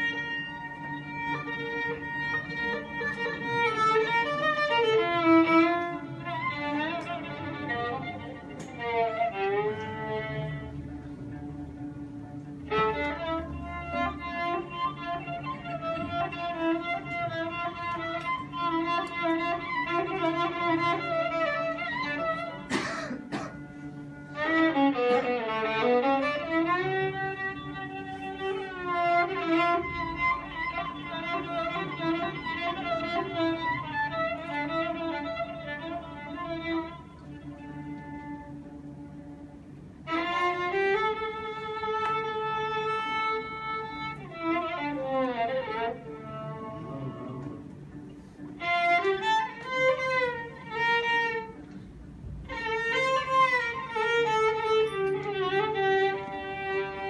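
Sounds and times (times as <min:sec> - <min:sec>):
violin bowed melody with slides: 0:00.0 - 0:22.7, 0:23.7 - 0:57.0
low held drone note: 0:45.7 - 0:57.0.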